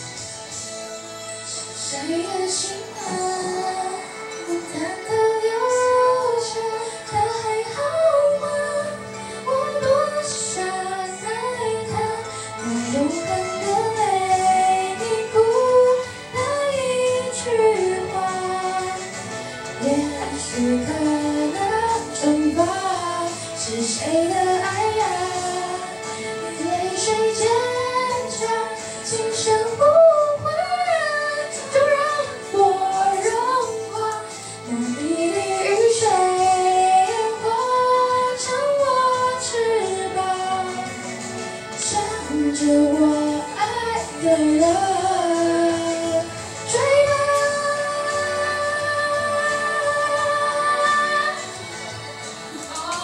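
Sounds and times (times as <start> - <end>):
backing track: 0.0 - 53.0
woman singing pop ballad: 1.5 - 53.0.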